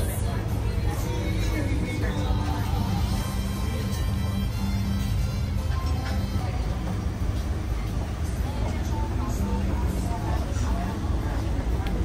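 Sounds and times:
boat engine rumble: 0:00.0 - 0:12.0
faint voices: 0:00.0 - 0:12.0
music: 0:00.0 - 0:12.0.

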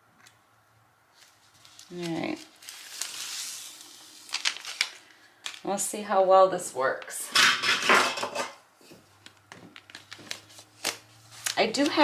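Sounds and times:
plastic sheet peeling off: 0:01.1 - 0:05.2
plastic sheet crinkling: 0:01.1 - 0:05.7, 0:09.2 - 0:12.0.

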